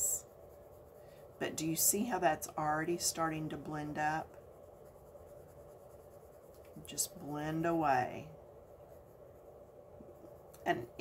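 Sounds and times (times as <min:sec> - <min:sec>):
coloured pencil scratching paper: 0:00.0 - 0:11.0.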